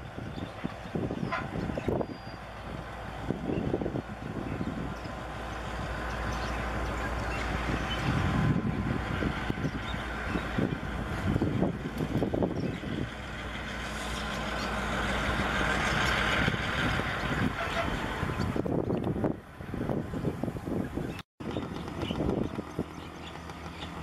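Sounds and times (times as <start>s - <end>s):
freight train rolling past: 0.0s - 24.0s
wind buffeting microphone: 0.0s - 24.0s.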